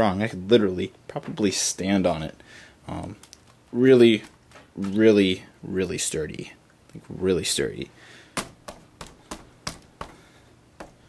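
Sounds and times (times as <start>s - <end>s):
fist knocking on plastic bricks: 8.4s - 11.0s.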